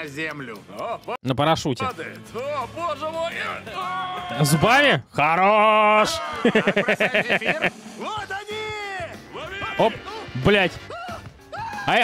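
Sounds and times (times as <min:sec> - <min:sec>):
man laughing in quick bursts: 0:06.2 - 0:07.9.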